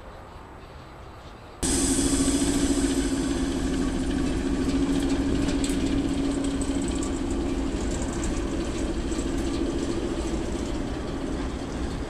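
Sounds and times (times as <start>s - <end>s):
diesel engine idling: 1.6s - 12.0s.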